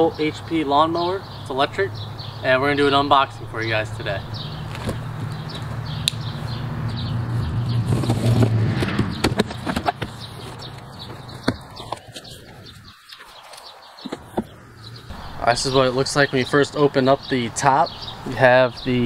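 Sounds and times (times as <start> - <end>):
steady low hum: 1.4 - 9.2
sharp clicks and rustles: 4.6 - 6.2.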